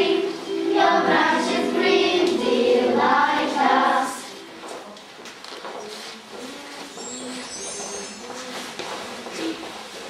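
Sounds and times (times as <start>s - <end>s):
children singing: 0.0s - 4.5s.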